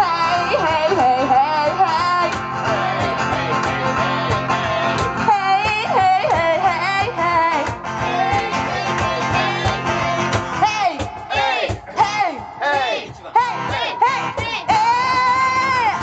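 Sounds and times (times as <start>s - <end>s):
woman singing pop song: 0.0s - 11.2s, 13.2s - 16.0s
cajon: 0.0s - 16.0s
strummed acoustic guitar: 0.0s - 16.0s.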